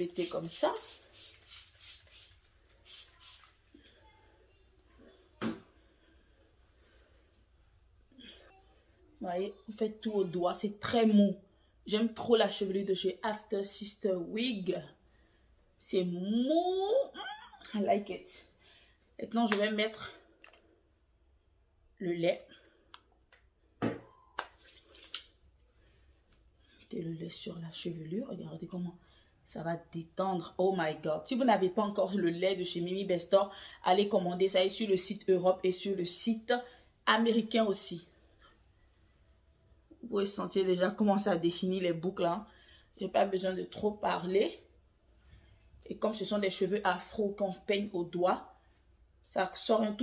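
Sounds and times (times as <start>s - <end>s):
spray bottle spraying: 0.0s - 3.6s.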